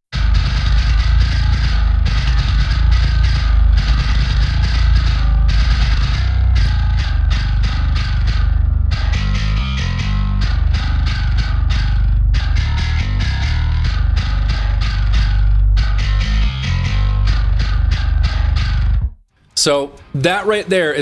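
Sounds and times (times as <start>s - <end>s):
bass guitar chugging riff: 0.1s - 19.2s.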